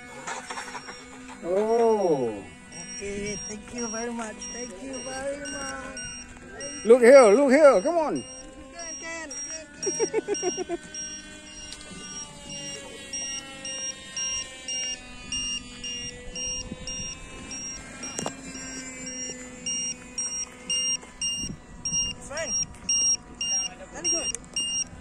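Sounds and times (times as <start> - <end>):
short high electronic beeps: 2.7 - 24.9.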